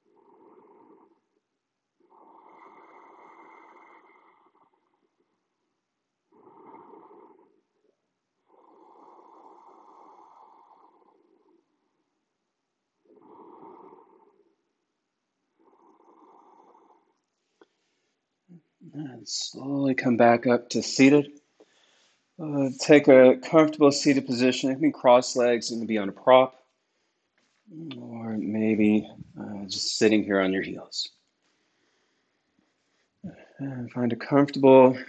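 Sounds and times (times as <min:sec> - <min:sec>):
deep breathing through throat: 0:21.6 - 0:22.3, 0:31.5 - 0:33.6.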